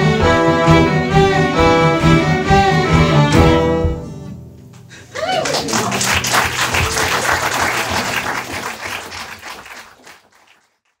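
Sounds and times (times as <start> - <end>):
audience applauding: 4.8 - 11.0.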